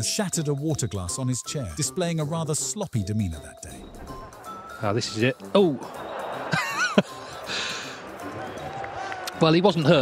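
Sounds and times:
audience gasping and murmuring: 5.9 - 9.4.

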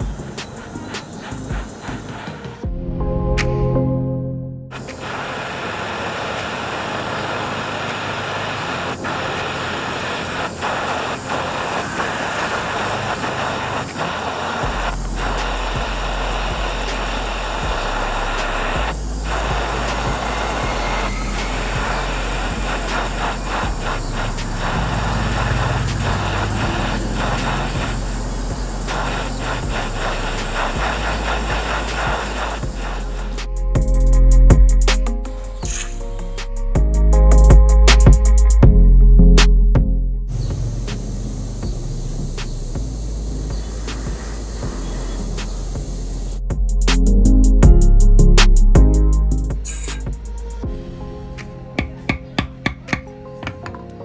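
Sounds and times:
gas torch flame hissing: 0.0 - 2.7, 4.7 - 36.7, 40.3 - 47.5, 49.3 - 50.6.

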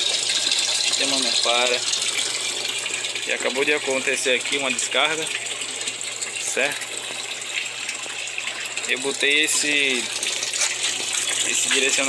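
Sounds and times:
water gushing through pipes: 0.0 - 12.0.

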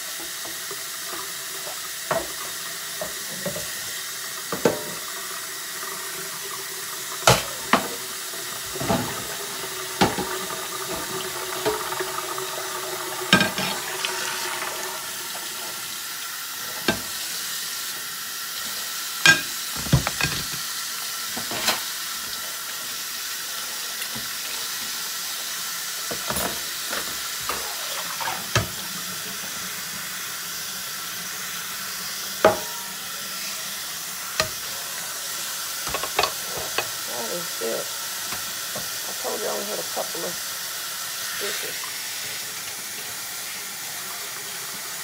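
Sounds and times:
tap running into steel sink: 4.5 - 5.0, 10.0 - 12.0, 28.2 - 28.8
dishes clinking: 32.4 - 32.9.

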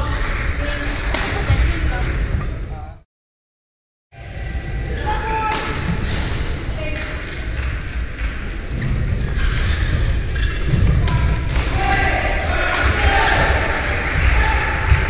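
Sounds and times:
low rumble of large hall: 0.0 - 3.0, 4.2 - 15.0
rackets striking shuttlecock: 12.6 - 14.4.

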